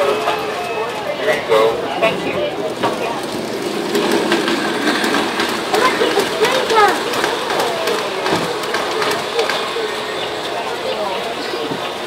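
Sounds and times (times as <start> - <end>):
model train rolling rumble: 0.0 - 12.0
faint clicking of train: 2.6 - 12.0.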